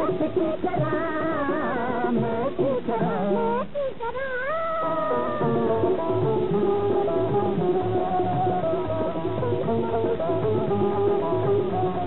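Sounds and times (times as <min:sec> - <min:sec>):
rhythmic backing: 0:00.0 - 0:12.0
woman singing long note: 0:04.0 - 0:05.9.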